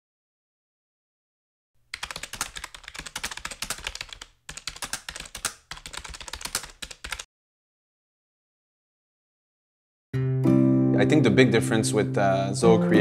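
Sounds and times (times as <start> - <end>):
rapid keyboard typing: 1.9 - 7.3.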